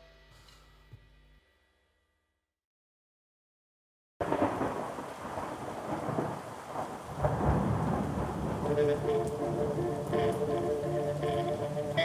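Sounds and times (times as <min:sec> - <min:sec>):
rain: 0:04.2 - 0:12.0
rolling thunder: 0:04.2 - 0:12.0
sustained musical tones: 0:08.6 - 0:12.0.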